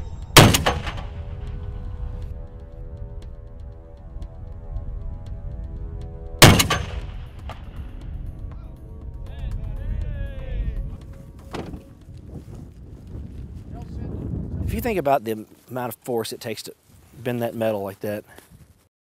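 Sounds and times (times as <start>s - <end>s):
rifle shot with echo: 0.4s - 1.5s, 6.4s - 7.8s
sharp gunshot report: 0.4s - 1.5s, 6.4s - 7.8s.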